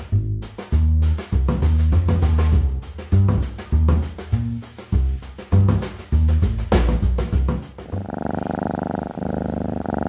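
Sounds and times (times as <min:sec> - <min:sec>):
cat purring: 0:07.7 - 0:10.0.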